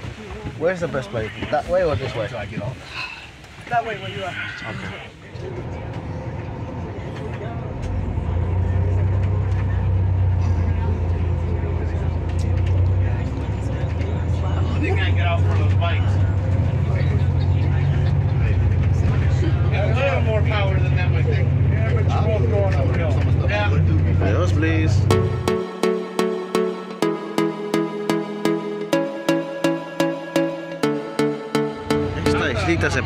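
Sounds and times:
bus engine and road drone: 4.4s - 25.6s.

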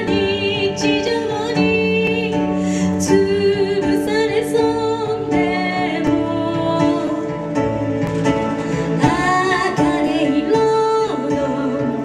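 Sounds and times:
woman singing into microphone: 0.0s - 7.6s, 8.7s - 12.0s
electronic keyboard chords: 4.6s - 12.0s.

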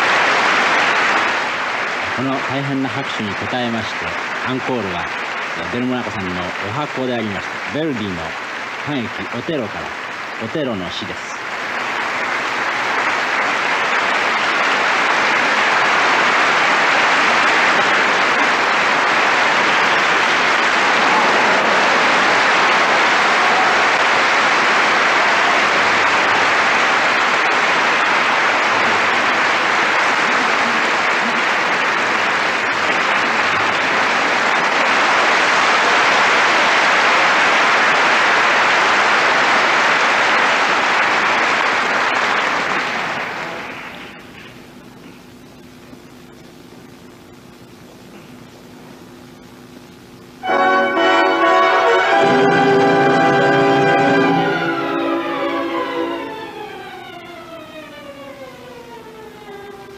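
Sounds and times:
audience applauding: 0.0s - 59.9s.

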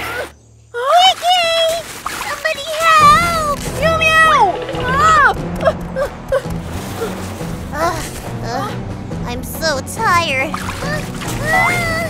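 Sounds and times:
background music: 3.0s - 12.0s.

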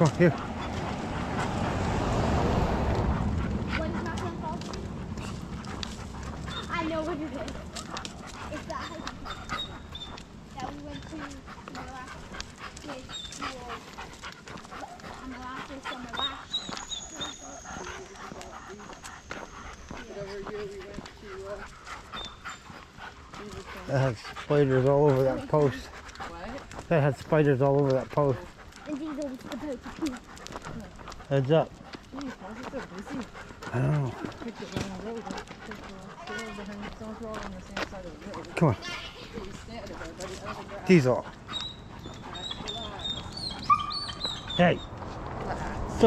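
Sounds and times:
clicking steps on pavement: 0.0s - 46.0s
dog panting: 0.0s - 46.0s.

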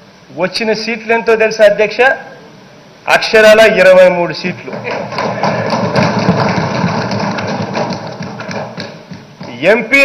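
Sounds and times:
people thumping desks: 4.6s - 9.8s.

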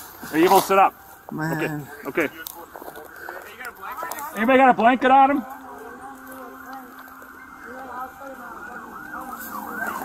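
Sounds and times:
emergency siren rising and falling: 4.4s - 10.0s.

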